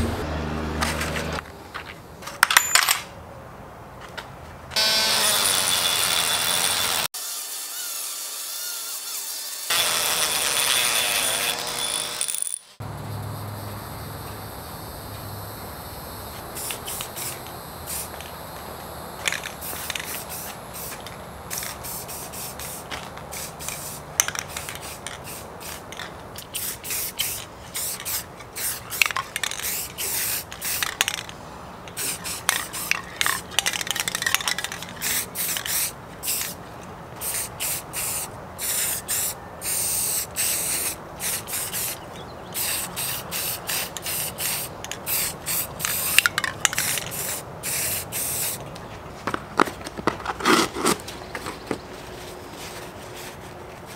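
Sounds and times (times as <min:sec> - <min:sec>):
spray paint can hissing: 0:16.3 - 0:31.3, 0:31.9 - 0:36.6, 0:37.2 - 0:42.0, 0:42.6 - 0:48.6.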